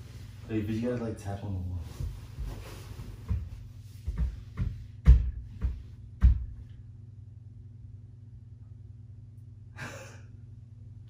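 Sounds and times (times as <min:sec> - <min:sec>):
hand knocking on wall: 0:03.3 - 0:06.7.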